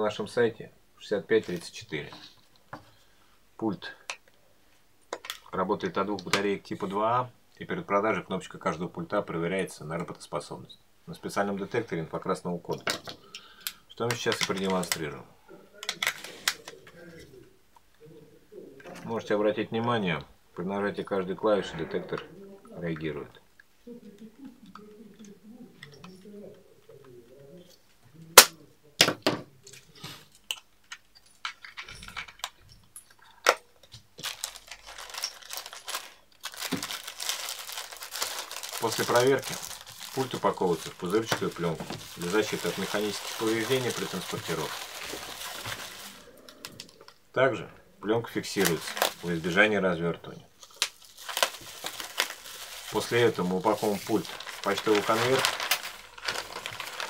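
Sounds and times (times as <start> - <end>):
bubble wrap crinkling: 34.2 - 47.0, 48.3 - 49.7, 50.6 - 57.0.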